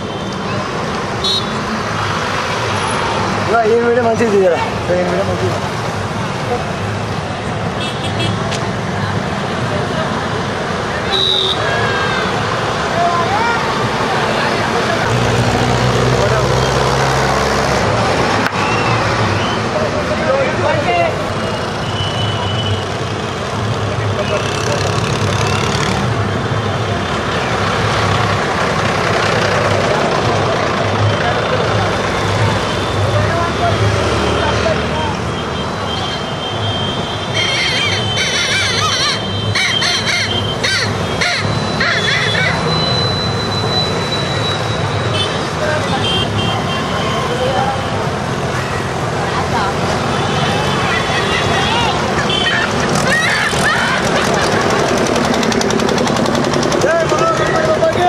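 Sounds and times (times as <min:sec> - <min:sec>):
crowd voices and calls: 0:00.0 - 0:58.0
truck and motorbike engines: 0:00.0 - 0:58.0.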